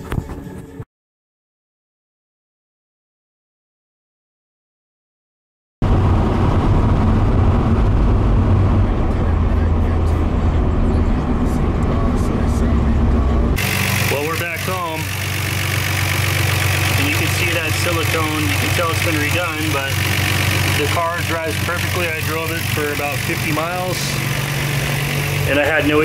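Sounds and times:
car engine drone in cabin: 5.8 - 26.0
car engine idling: 5.8 - 26.0.

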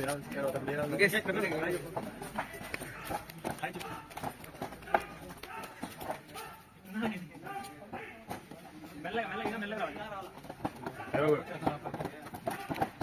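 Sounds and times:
footsteps on benches: 0.0 - 13.0
men's voices chattering: 0.0 - 13.0.

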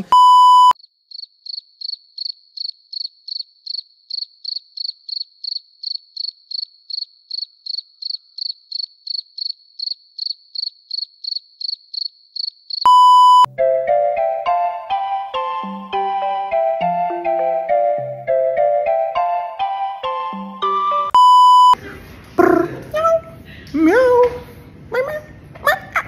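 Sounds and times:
loud electronic beep: 0.0 - 0.8, 12.9 - 13.6, 21.1 - 21.8
crickets chirping sound effect: 0.8 - 12.8.

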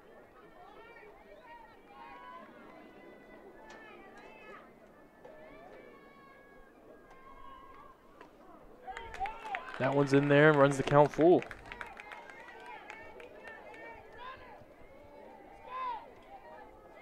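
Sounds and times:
faint voices calling out: 0.0 - 10.2, 11.6 - 17.0.

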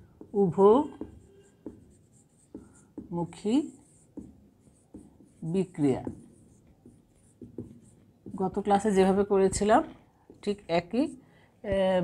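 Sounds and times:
marker pen on whiteboard: 0.0 - 12.0.

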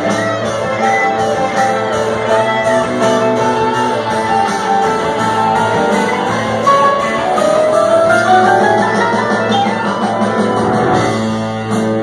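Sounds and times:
electric guitar: 0.0 - 12.0
live band instrumental jam: 0.0 - 12.0.

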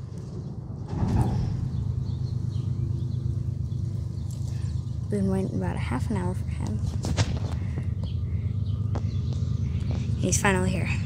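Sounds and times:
diesel locomotives rumbling: 0.0 - 11.0.

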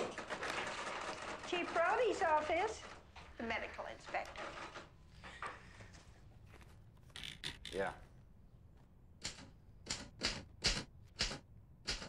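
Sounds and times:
typewriter key strikes: 9.2 - 12.0.

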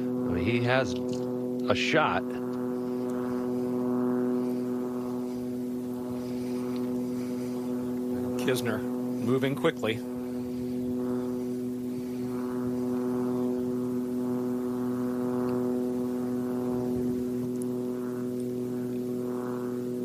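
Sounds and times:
steady mechanical drone: 0.0 - 20.0.

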